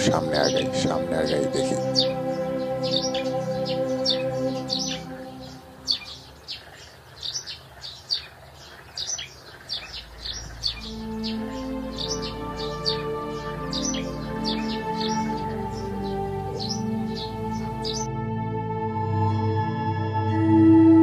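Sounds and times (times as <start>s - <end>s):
music of held chords: 0.0s - 6.5s, 10.0s - 21.0s
birds chirping: 0.0s - 18.1s.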